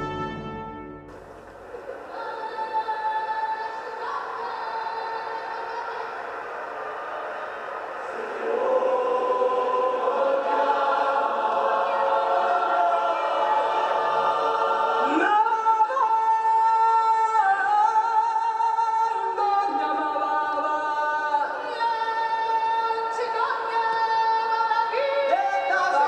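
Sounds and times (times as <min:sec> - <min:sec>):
large choir singing held chords: 0:00.0 - 0:17.0.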